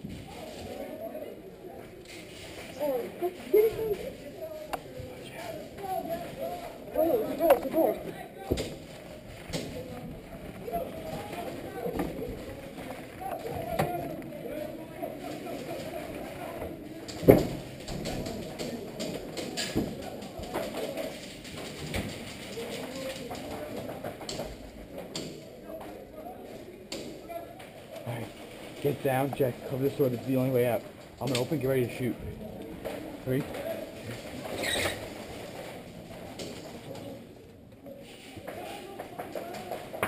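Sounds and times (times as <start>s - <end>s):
muffled voices: 0.0s - 40.0s
footsteps: 1.7s - 40.0s.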